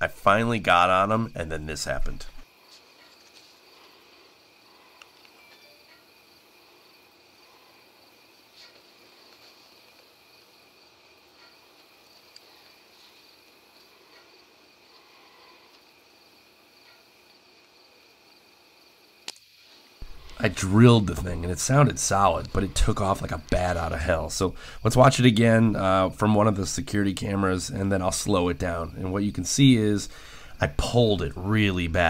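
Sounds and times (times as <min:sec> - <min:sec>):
crickets chirring: 0:00.3 - 0:32.0.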